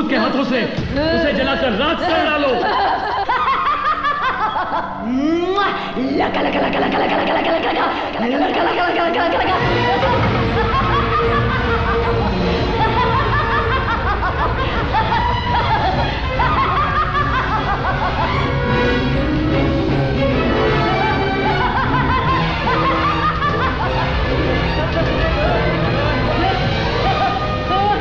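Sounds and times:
woman laughing wildly: 0:02.4 - 0:18.6, 0:20.8 - 0:27.4
woman cackling laughter: 0:02.6 - 0:05.1
dramatic film music: 0:05.6 - 0:28.0.

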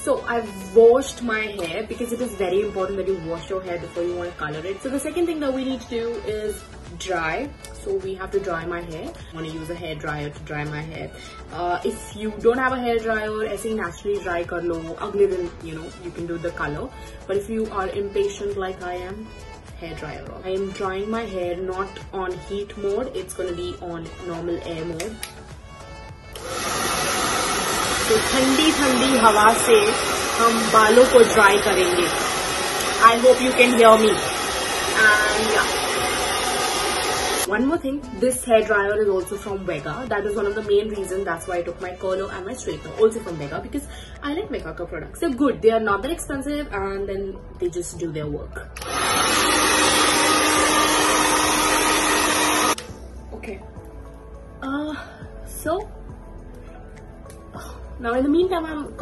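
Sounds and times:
hair dryer blowing air: 0:00.0 - 0:05.0, 0:26.2 - 0:37.7, 0:48.8 - 0:52.9.

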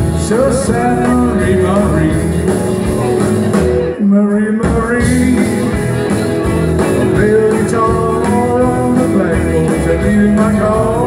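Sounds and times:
bass: 0:00.0 - 0:11.0
drums: 0:00.0 - 0:11.0
electric guitar lines: 0:00.0 - 0:11.0.

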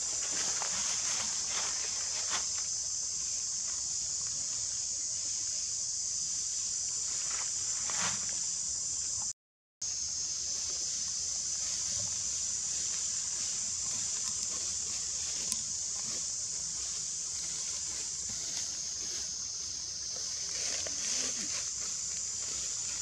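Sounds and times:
insect chorus drone: 0:00.0 - 0:23.0.

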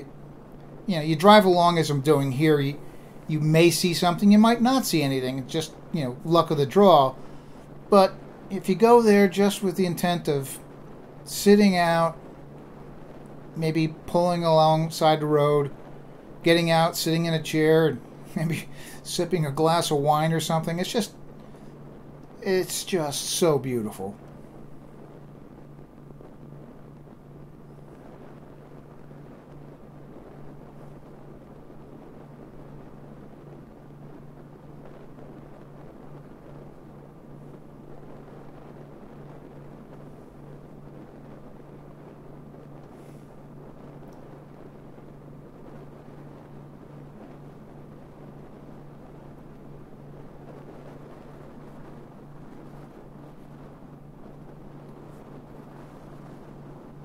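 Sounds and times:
wind noise on microphone: 0:00.0 - 0:19.6, 0:24.2 - 0:57.0
constant low drone: 0:00.0 - 0:57.0.

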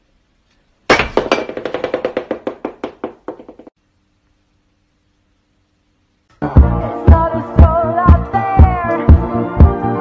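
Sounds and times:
rapid ringing knocks: 0:00.9 - 0:03.8.

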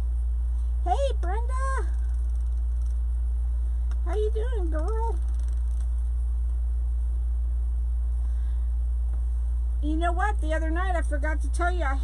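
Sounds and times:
room fan humming: 0:00.0 - 0:12.0.

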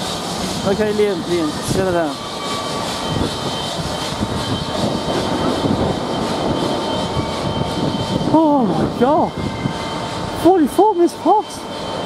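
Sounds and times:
steam locomotive hissing steam: 0:00.0 - 0:12.0.

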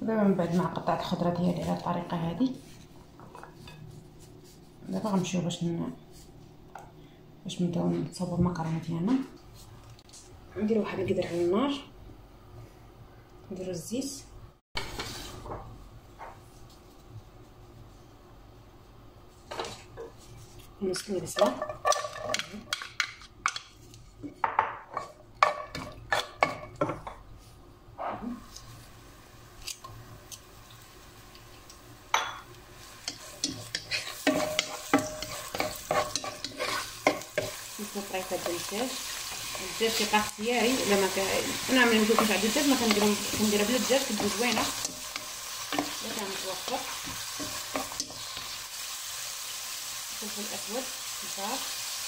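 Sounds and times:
onion frying sizzle: 0:28.3 - 0:52.0
spatula knocking and scraping pot: 0:32.2 - 0:39.8, 0:41.5 - 0:46.2.

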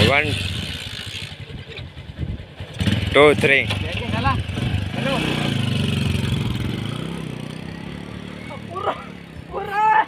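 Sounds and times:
small motorcycle engine running: 0:00.0 - 0:09.3
person shouting: 0:08.5 - 0:10.0.

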